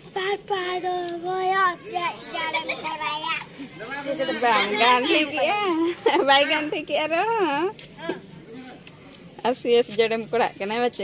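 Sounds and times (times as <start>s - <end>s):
young child talking: 0.1s - 3.5s.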